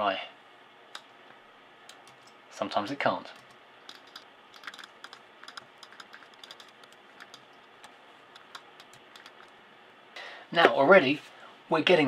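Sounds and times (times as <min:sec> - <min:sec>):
keyboard keys clicking: 0:03.4 - 0:09.5.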